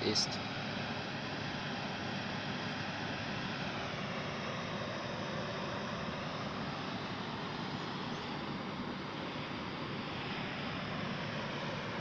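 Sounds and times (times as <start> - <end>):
outdoor background rumble and hiss: 0.0 - 12.0.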